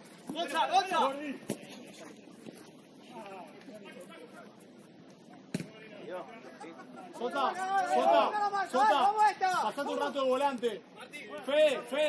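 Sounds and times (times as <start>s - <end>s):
ball being kicked: 5.5s - 5.8s.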